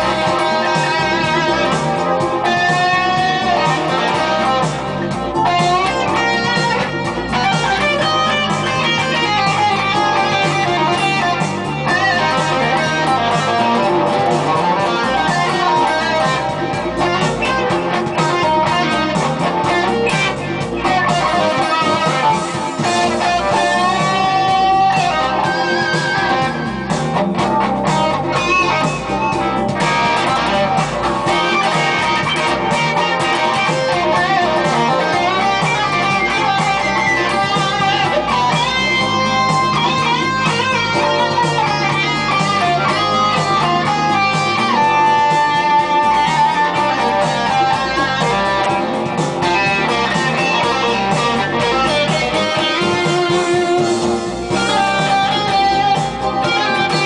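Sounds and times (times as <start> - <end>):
overdriven electric guitar: 0.0 - 57.0.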